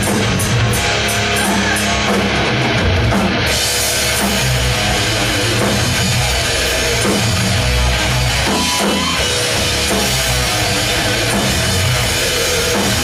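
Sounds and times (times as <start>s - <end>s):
live rock band playing: 0.0s - 13.0s.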